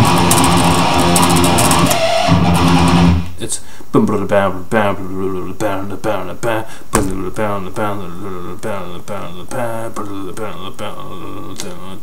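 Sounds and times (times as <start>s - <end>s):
electric guitar metal riff: 0.0s - 3.3s.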